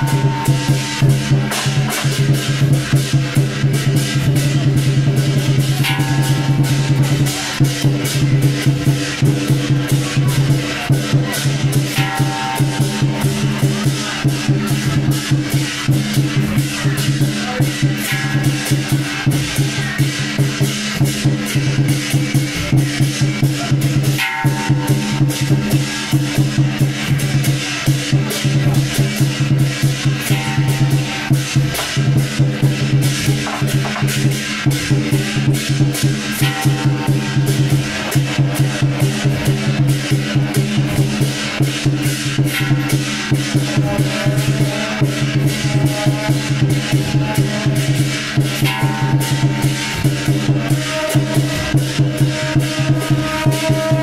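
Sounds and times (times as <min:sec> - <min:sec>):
fast procession drumming: 0:00.0 - 0:54.0.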